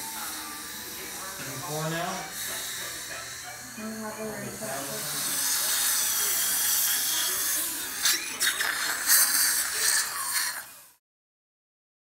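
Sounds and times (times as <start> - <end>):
dental instrument high hiss: 0.0 - 11.0.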